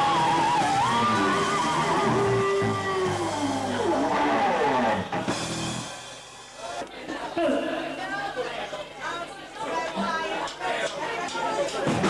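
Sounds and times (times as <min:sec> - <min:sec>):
electric guitar lead bending: 0:00.0 - 0:05.9
live blues band: 0:00.0 - 0:06.2.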